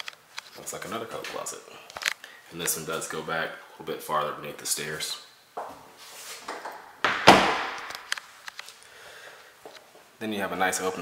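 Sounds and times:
closet door thud: 6.5 - 7.9.

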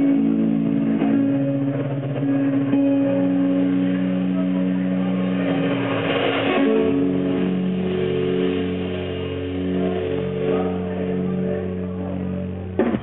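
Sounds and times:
rock band with electric guitars: 0.0 - 13.0.

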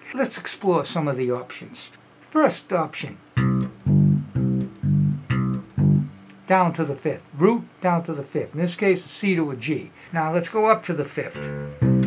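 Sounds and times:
electric bass guitar notes: 3.4 - 6.4, 11.3 - 12.0.

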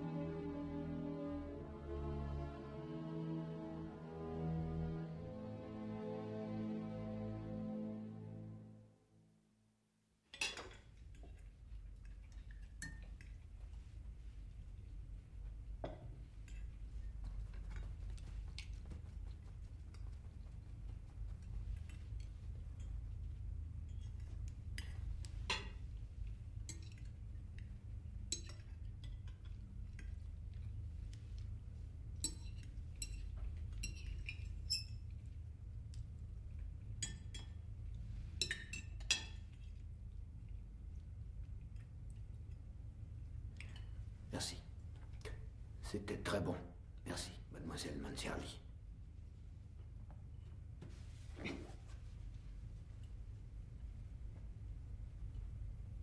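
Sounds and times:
low steady hum: 0.0 - 9.7, 10.3 - 56.0
cutlery clinking on plates: 10.3 - 11.5, 28.3 - 29.5, 32.2 - 35.0, 37.0 - 37.6, 38.4 - 39.6.

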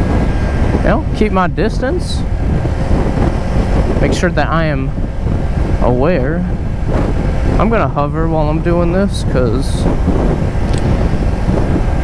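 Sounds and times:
motorcycle engine cruising: 0.0 - 12.0
wind rushing on microphone: 0.0 - 12.0.

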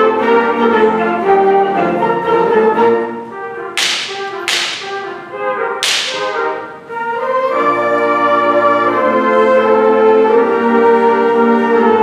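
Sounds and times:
bright percussion strikes: 3.8 - 5.2, 5.8 - 6.6.

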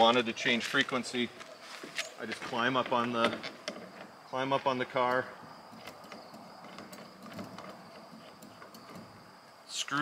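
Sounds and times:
metal antenna clicking and scraping: 5.0 - 9.2.

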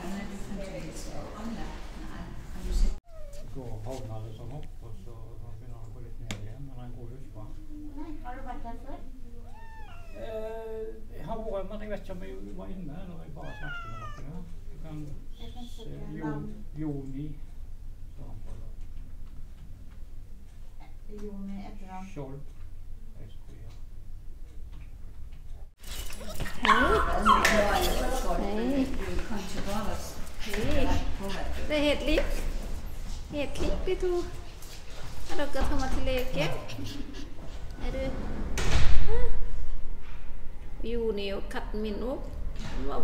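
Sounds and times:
cat meowing: 3.0 - 3.6, 9.4 - 10.5, 13.4 - 14.4
small dog whimpering and yipping: 3.1 - 3.5, 9.5 - 10.3, 13.4 - 14.3.

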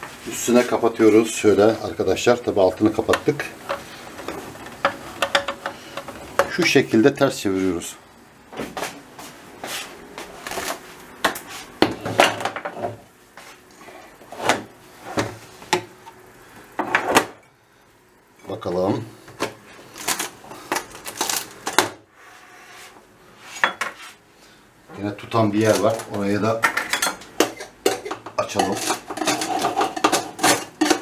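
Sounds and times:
metal baking trays clattering: 25.6 - 31.0.

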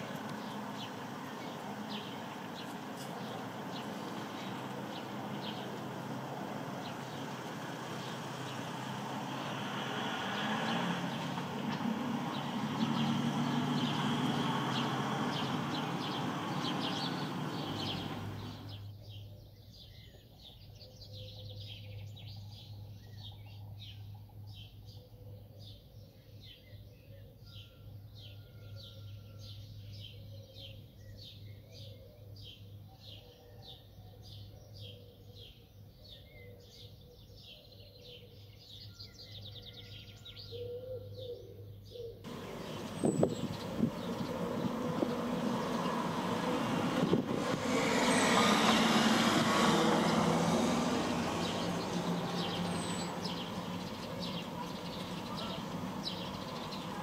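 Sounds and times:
small birds chirping: 0.0 - 57.0
loud steady rushing noise: 42.3 - 57.0.

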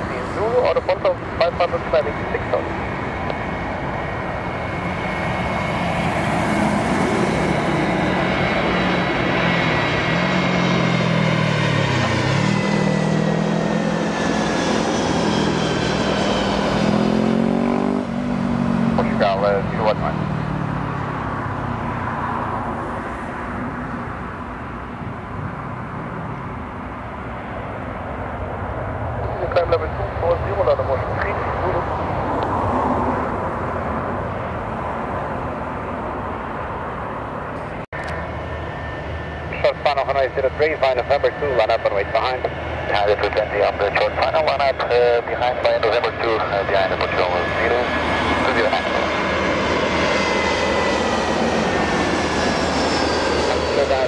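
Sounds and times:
jet airliner passing overhead: 0.0 - 54.0.

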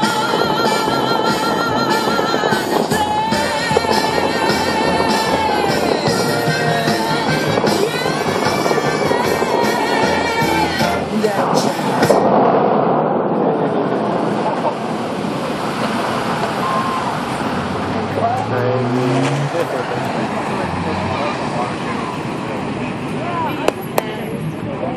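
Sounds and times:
music over loudspeakers: 0.0 - 12.3
people talking: 0.0 - 12.3, 18.1 - 24.9
fountain jets rushing: 0.0 - 12.4, 13.5 - 24.9.

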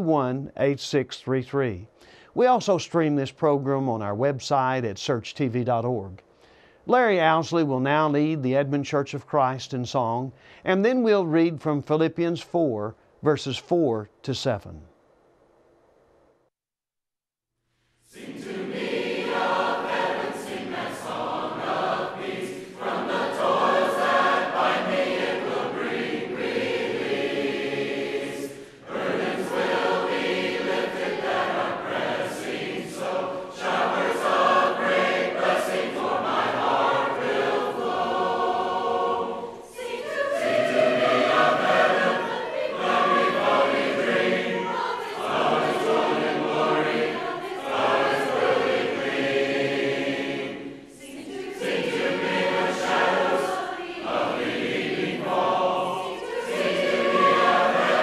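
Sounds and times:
congregation singing a hymn: 18.1 - 58.0.

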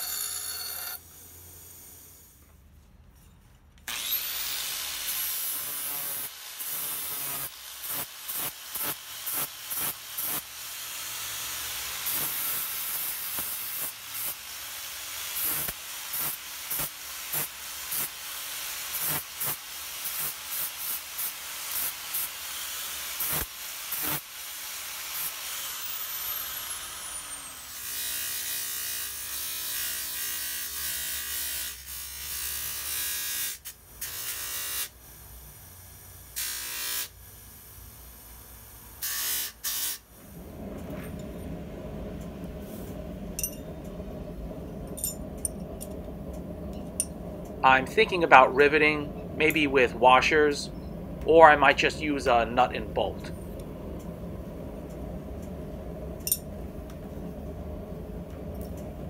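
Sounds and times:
bench grinder motor hum: 3.9 - 4.8
angle grinder grinding steel: 3.9 - 14.4.

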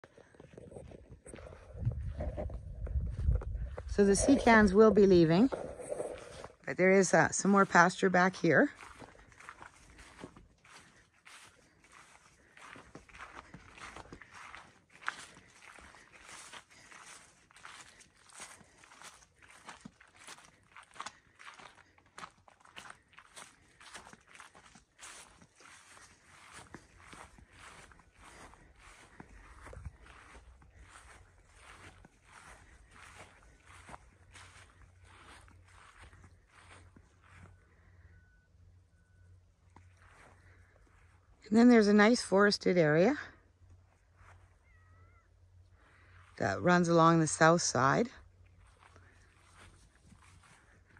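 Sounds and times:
footsteps through long grass: 0.0 - 38.1, 39.2 - 50.9.

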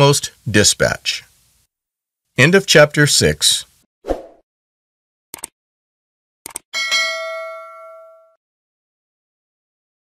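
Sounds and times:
notification bell ding: 6.8 - 8.4.

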